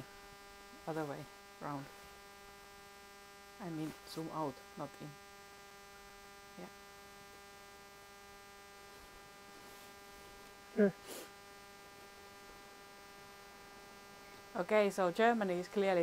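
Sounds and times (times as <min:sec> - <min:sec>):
electrical hum and buzz: 0:00.0 - 0:16.0
person speaking: 0:00.8 - 0:02.0, 0:03.6 - 0:05.2.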